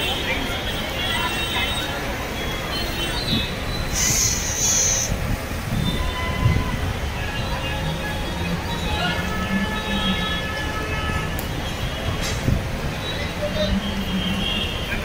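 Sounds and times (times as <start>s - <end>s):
people's voices: 0.0s - 15.0s
traffic rumble: 0.0s - 15.0s
brief hiss: 3.9s - 5.2s.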